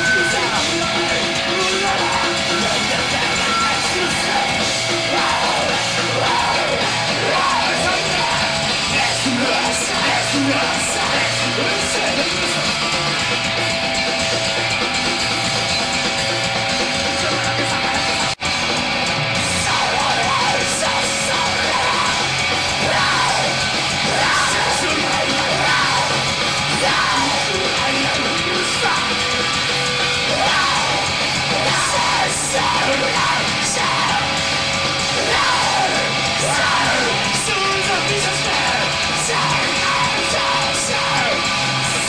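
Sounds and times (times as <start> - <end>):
singer yelling into microphone: 0.0 - 14.5, 19.4 - 42.0
distorted electric guitar: 0.0 - 42.0
drum kit: 0.0 - 42.0
heavy rock band playing: 0.0 - 42.0.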